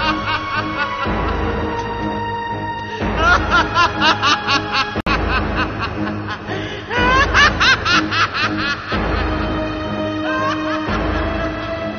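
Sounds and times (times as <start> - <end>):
man laughing: 0.0 - 2.2, 2.9 - 11.9
background music: 0.0 - 11.9.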